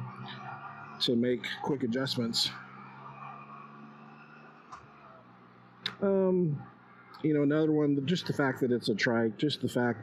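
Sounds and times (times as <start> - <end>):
engine droning at cruising speed: 0.0 - 10.0.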